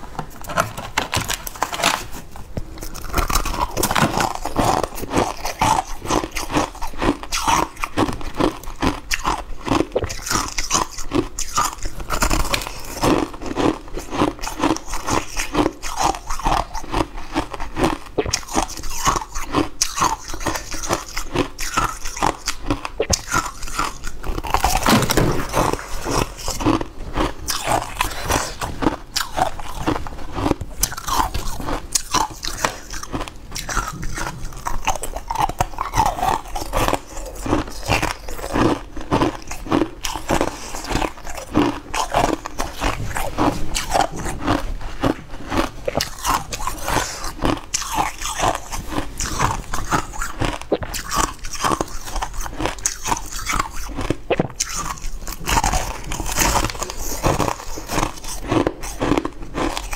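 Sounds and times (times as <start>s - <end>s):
chewing crunchy ice: 0.0s - 59.9s.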